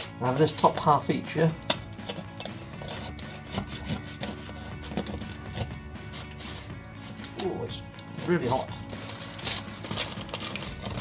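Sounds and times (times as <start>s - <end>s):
knife sawing bread crust: 2.0s - 7.6s.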